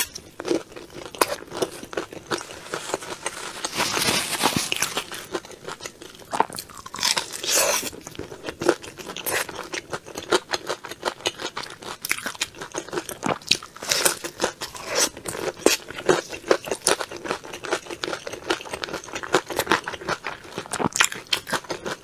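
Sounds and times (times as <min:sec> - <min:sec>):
crunchy chewing: 0:00.0 - 0:22.0.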